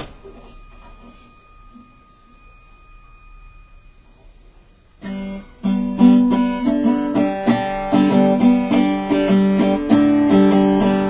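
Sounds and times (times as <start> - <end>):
background hiss and hum: 0.0 - 11.0
faint high-pitched tones: 0.0 - 11.0.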